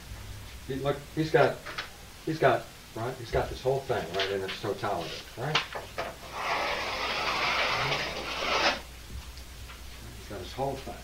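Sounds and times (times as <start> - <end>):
chalk scraping on chalkboard: 6.2 - 8.8.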